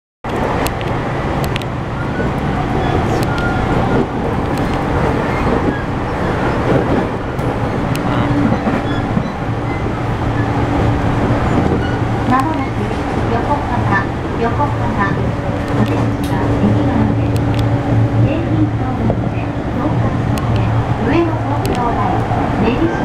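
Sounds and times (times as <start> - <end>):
train motor rumble and hum: 0.3 - 23.0.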